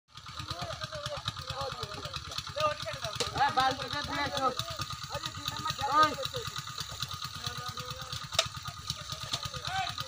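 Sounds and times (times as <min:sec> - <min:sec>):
distant voices calling and talking: 0:00.1 - 0:10.0
rapid low chugging: 0:00.1 - 0:10.0.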